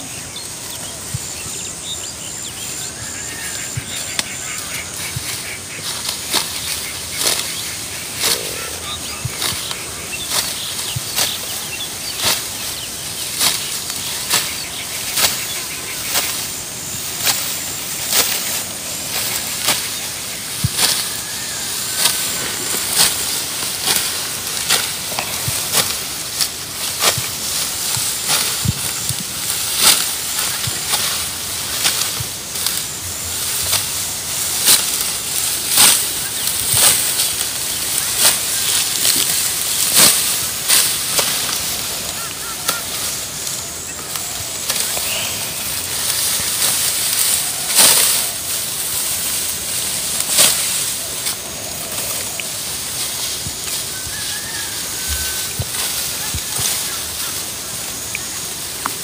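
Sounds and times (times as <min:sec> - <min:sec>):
crisp cuts of rice stalks: 0:00.1 - 0:59.0
stalks rustling: 0:02.7 - 0:59.0.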